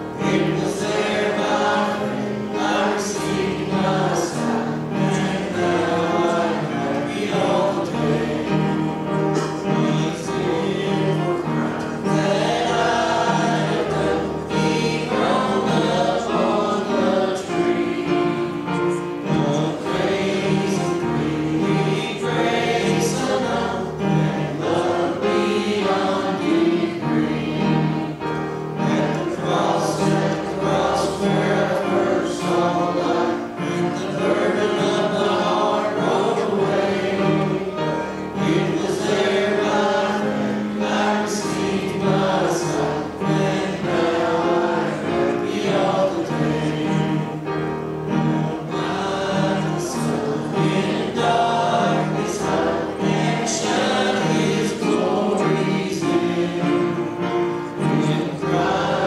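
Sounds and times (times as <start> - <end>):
congregation singing a hymn: 0.0 - 59.0.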